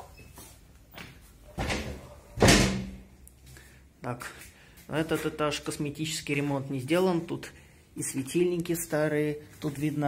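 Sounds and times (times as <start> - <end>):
door slamming shut: 1.6 - 3.1.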